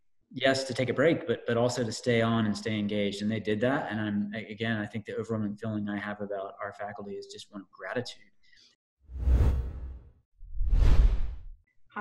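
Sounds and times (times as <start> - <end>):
whoosh transition effects: 9.1 - 11.5.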